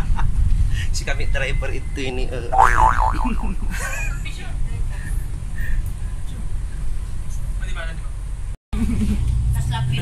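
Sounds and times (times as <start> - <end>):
loud rising and falling tone: 2.6 - 3.8
bus engine rumble: 3.6 - 10.0.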